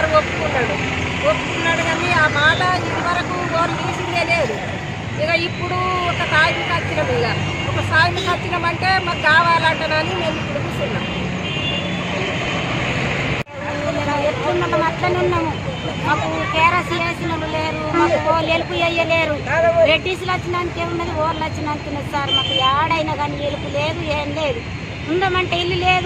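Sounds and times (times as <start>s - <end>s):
woman speaking: 0.0s - 4.6s, 5.2s - 11.2s, 13.5s - 26.0s.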